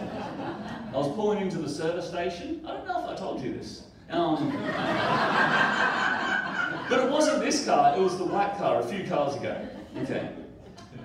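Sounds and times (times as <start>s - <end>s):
laughter: 0.0s - 1.0s, 4.4s - 7.1s, 9.4s - 11.0s.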